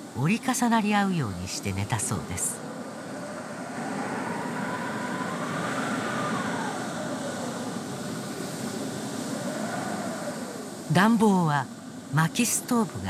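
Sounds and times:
howling wind: 0.0 - 13.0.

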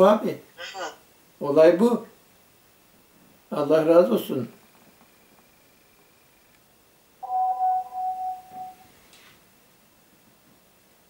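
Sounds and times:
chime tone: 7.2 - 8.9.

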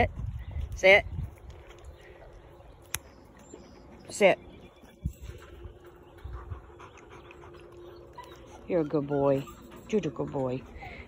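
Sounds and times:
dog panting softly: 5.9 - 11.0.

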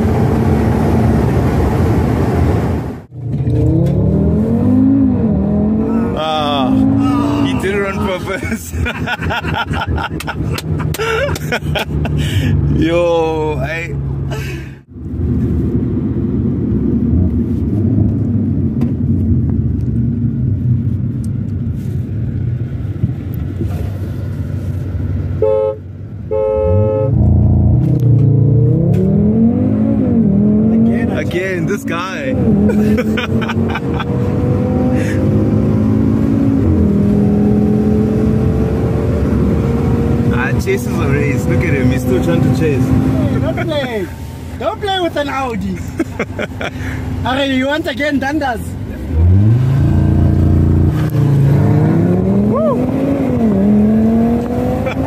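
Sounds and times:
car engine revving: 0.0 - 14.3, 26.6 - 47.4, 48.9 - 55.0
car horn toots: 25.4 - 27.4.

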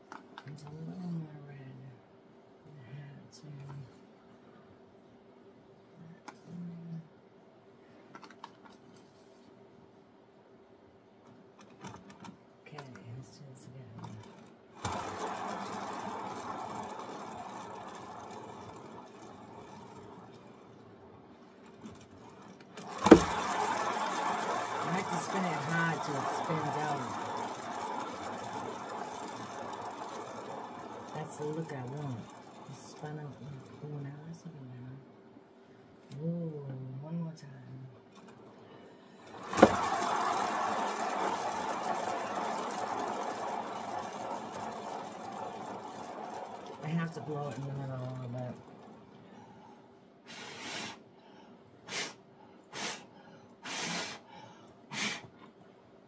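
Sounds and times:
turntable whirring: 14.0 - 34.5, 39.2 - 50.6.

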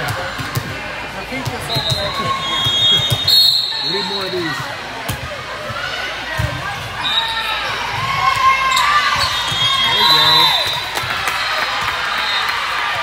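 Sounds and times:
players calling out: 6.0 - 12.5
sneakers squeaking on court floor: 8.7 - 10.9.

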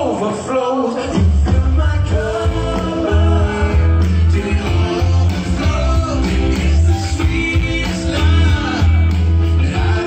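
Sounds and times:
live band music through speakers: 0.0 - 10.0.

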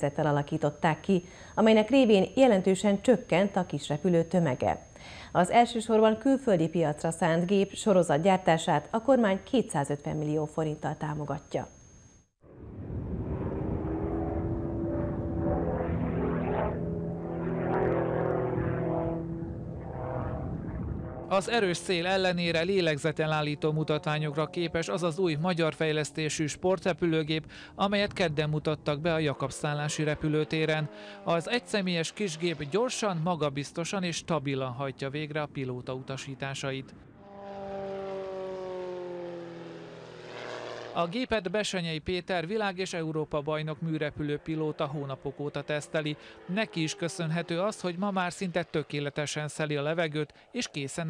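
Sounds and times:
propeller plane flying overhead: 12.4 - 41.2, 42.5 - 51.0.

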